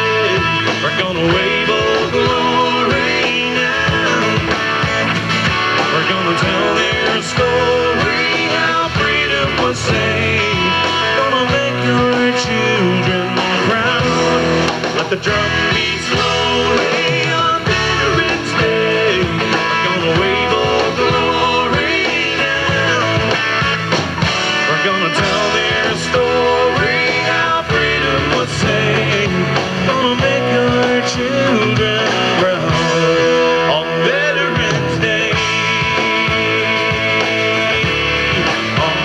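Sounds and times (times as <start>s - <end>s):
rock band music with guitar: 0.0s - 39.0s.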